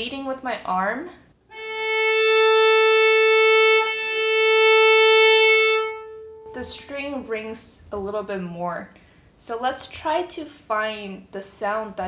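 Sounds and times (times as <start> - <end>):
bowed viola note: 1.5 - 7.1.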